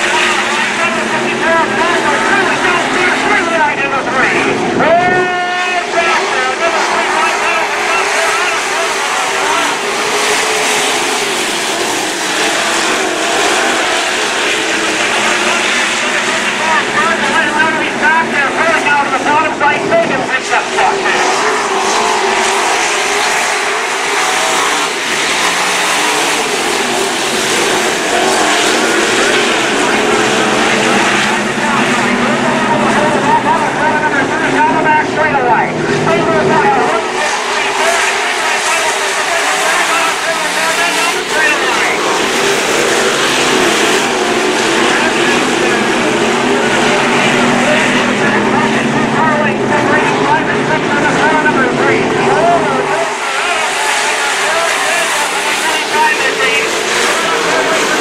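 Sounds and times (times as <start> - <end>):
racing car engines revving: 0.0 - 58.0.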